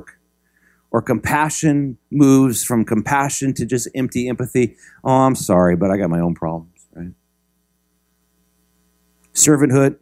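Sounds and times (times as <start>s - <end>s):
faint mains hum: 0.0s - 10.0s.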